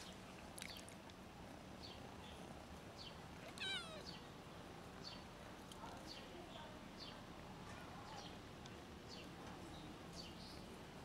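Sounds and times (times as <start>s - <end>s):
kitten meowing: 3.5s - 4.1s.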